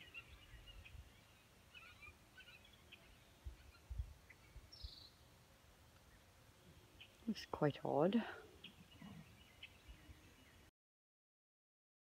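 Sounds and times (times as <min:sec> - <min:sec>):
bird chirps: 0:00.0 - 0:05.2, 0:06.0 - 0:07.5, 0:08.5 - 0:10.7.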